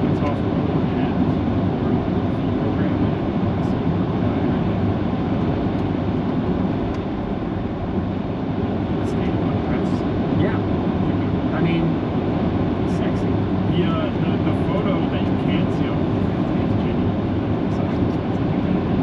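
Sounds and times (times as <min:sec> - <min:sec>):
faint voices in conversation: 0:00.0 - 0:04.8, 0:08.9 - 0:12.0, 0:12.8 - 0:19.0
car cabin road and engine rumble: 0:00.0 - 0:19.0.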